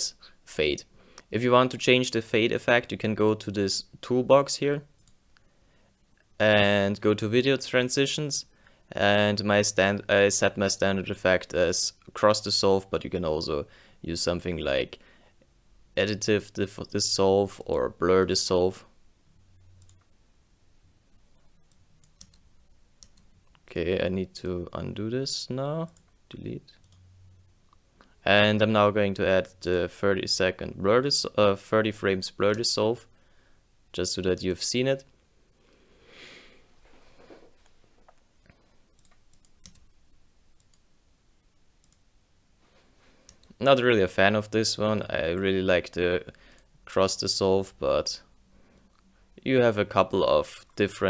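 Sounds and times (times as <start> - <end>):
computer mouse clicks: 5.0 - 5.2, 21.4 - 23.6, 39.0 - 40.0, 40.6 - 40.8, 41.8 - 42.0.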